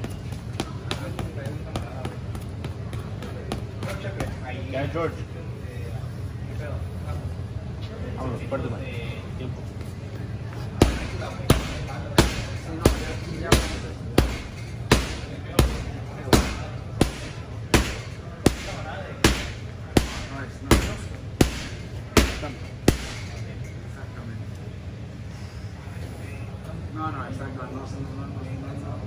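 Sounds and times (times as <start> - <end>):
boxing gloves punching heavy bag: 10.8 - 23.4.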